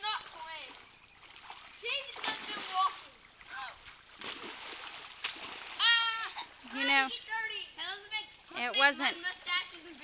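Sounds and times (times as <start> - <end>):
children splashing in a puddle: 0.0 - 8.4.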